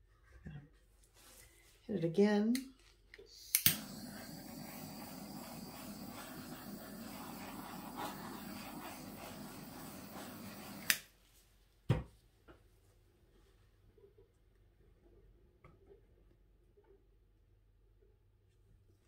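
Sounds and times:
torch igniter click: 0:03.5 - 0:05.0, 0:10.5 - 0:11.1
torch flame hissing: 0:03.5 - 0:11.1.

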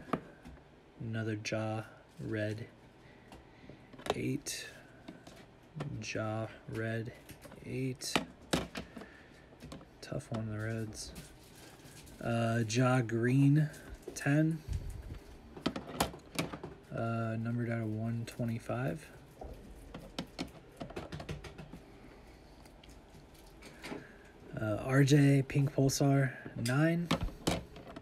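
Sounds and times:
plastic cases clicking together: 0:19.8 - 0:21.8.

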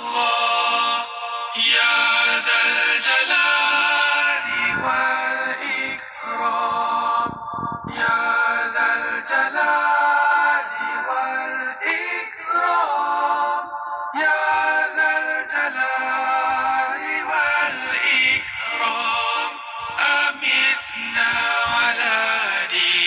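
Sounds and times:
person chanting melodically: 0:00.0 - 0:23.0.

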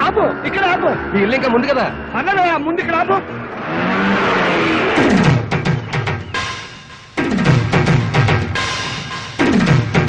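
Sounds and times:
drum-led film music: 0:00.0 - 0:10.0.

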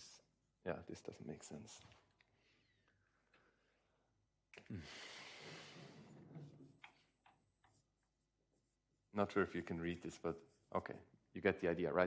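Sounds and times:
marker rubbing on whiteboard: 0:06.5 - 0:11.1.

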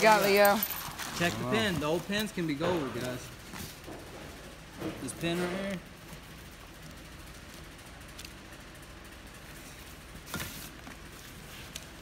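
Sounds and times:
plastic bag rustle: 0:00.0 - 0:02.2
low room hum: 0:00.0 - 0:12.0.

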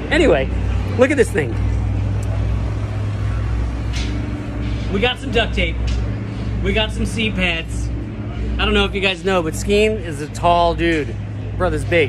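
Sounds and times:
low motor drone: 0:00.0 - 0:12.0.

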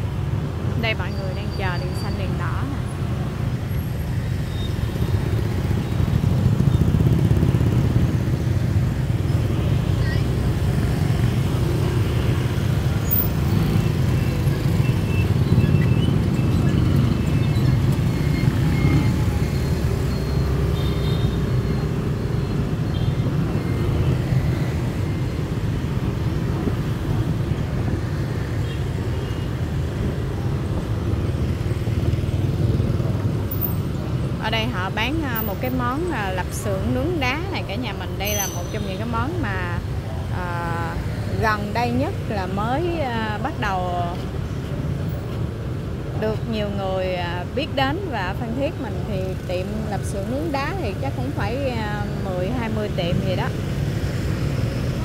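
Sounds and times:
cars passing: 0:00.0 - 0:55.0
motorbikes passing: 0:00.0 - 0:55.0.

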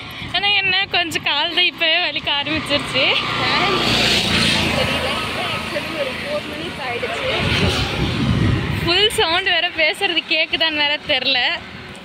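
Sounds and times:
vehicle passing by: 0:01.7 - 0:12.0.

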